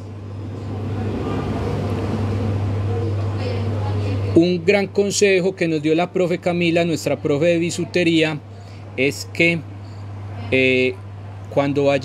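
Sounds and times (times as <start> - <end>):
vehicle low rumble: 0.0 - 12.0.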